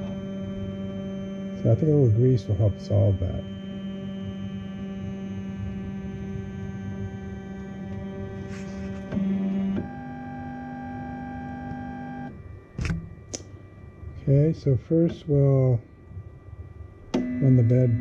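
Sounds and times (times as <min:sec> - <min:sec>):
printer motors whining: 0:00.0 - 0:13.2, 0:13.8 - 0:18.0
sharp click: 0:12.8 - 0:13.5.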